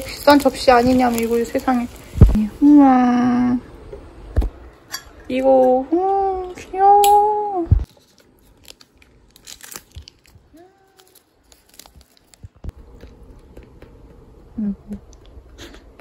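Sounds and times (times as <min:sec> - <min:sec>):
clicks and crinkles of handling: 0:00.0 - 0:02.4, 0:07.8 - 0:12.7.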